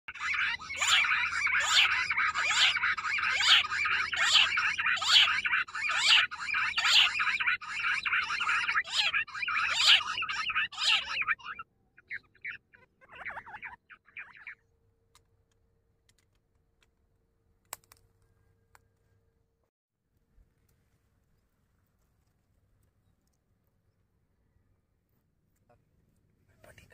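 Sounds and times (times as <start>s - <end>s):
francolin calling: 0.1s - 14.6s.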